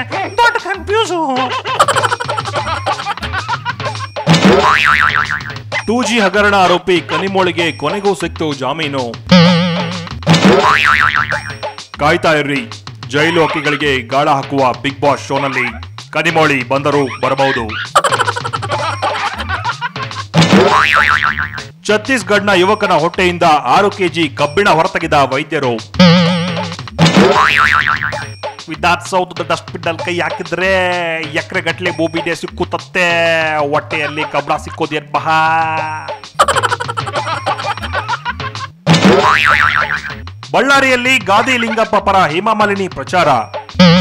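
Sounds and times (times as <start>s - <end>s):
background music: 0.0s - 44.0s
cartoon boing effect: 4.3s - 5.6s, 9.3s - 11.6s, 20.4s - 21.6s, 26.0s - 28.3s, 38.9s - 40.2s, 43.8s - 44.0s.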